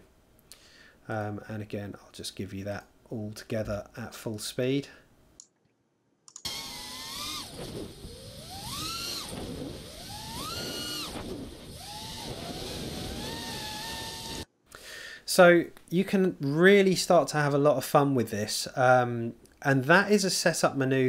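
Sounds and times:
drone motors whining: 0:06.4 - 0:14.5.

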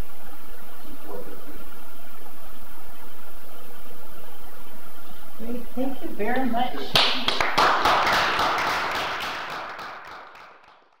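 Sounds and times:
audience applauding: 0:06.8 - 0:11.0.

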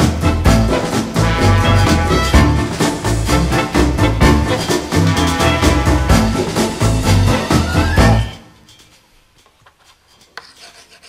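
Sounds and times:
scratchy rubbing noise: 0:09.8 - 0:11.0.

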